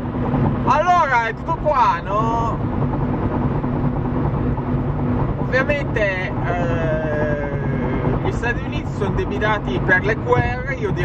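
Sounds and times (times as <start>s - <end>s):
car engine and tyre hum: 0.0s - 11.0s
faint low drone: 1.5s - 10.0s.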